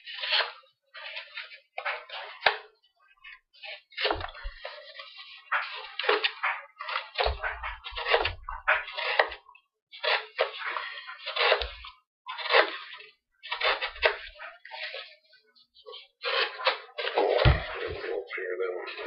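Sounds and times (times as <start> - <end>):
knife slicing cardboard: 0.0 - 2.7, 3.6 - 9.4, 10.0 - 15.2, 16.2 - 17.9
dull thumps: 17.4 - 18.0.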